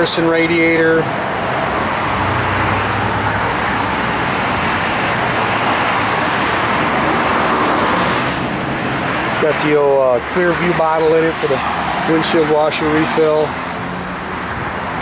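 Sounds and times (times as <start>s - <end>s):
road traffic rushing: 0.0s - 15.0s.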